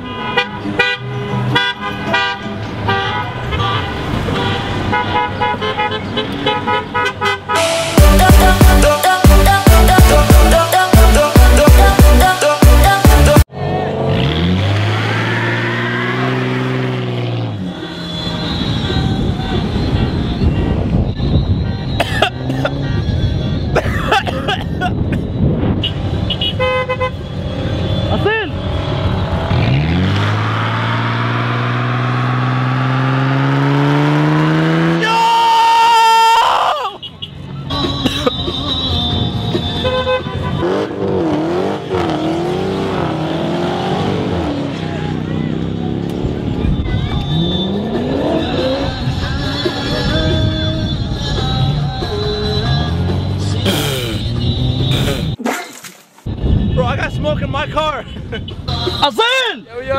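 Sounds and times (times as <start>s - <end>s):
car horns honking: 0.0s - 35.3s, 36.9s - 45.8s, 46.4s - 55.4s, 58.3s - 59.6s
car engines revving: 13.4s - 21.2s, 27.0s - 35.2s, 37.4s - 55.4s
people shouting: 35.0s - 37.0s.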